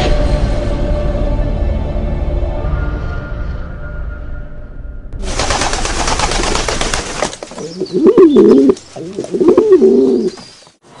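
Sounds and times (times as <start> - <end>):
pigeons flapping wings: 5.2 - 10.4.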